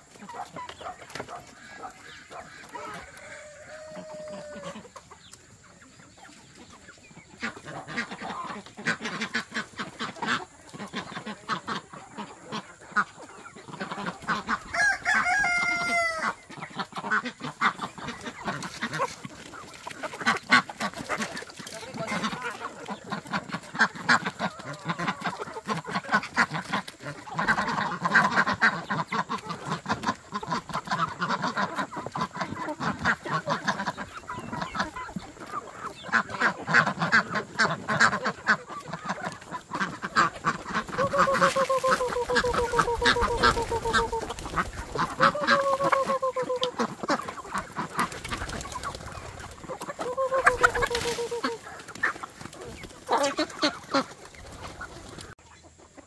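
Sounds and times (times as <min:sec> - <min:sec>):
chickens and ducks clucking: 0:00.0 - 0:56.0.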